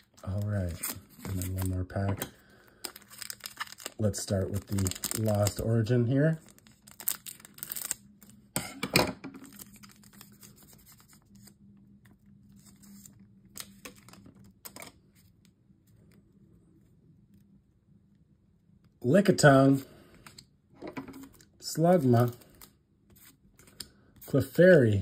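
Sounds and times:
foil wrapper crinkling: 0.0s - 1.9s, 2.6s - 5.7s, 6.4s - 8.3s
cards flipped through: 6.5s - 8.3s.

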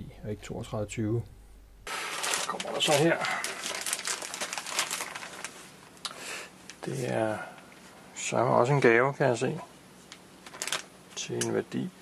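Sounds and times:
plastic mailer bag crinkling: 1.9s - 5.9s, 10.4s - 10.9s.

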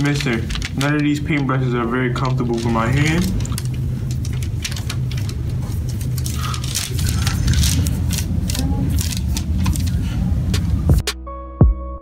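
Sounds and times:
scratchy clicks and rustles of paper: 0.0s - 10.8s
low room hum: 0.0s - 11.0s.

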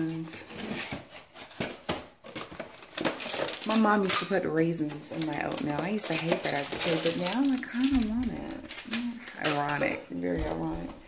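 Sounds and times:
rustling: 0.4s - 11.0s.

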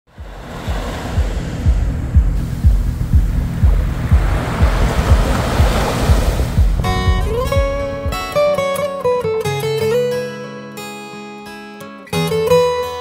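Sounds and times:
sea waves washing onto shore: 0.1s - 8.3s
low drum beat: 0.1s - 8.7s.

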